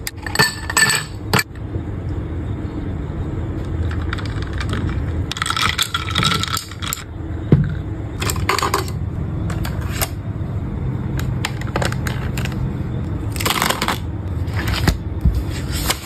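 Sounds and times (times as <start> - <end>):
low steady hum: 0.0 - 16.0
marker pens rattling: 3.8 - 7.0, 11.4 - 12.6.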